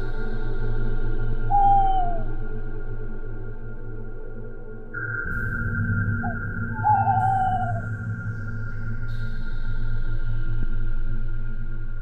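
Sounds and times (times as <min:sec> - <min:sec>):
eerie droning ambient music: 0:00.0 - 0:12.0
long hooting call: 0:01.5 - 0:02.3, 0:06.2 - 0:07.9.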